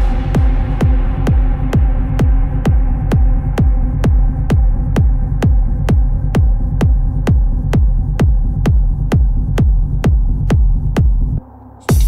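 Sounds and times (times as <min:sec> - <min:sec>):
bass drone: 0:00.0 - 0:12.0
muffled techno kick drum: 0:00.0 - 0:12.0.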